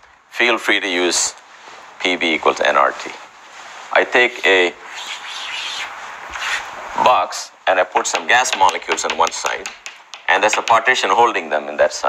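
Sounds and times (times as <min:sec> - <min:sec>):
chalk scratching on blackboard: 0:04.9 - 0:06.7.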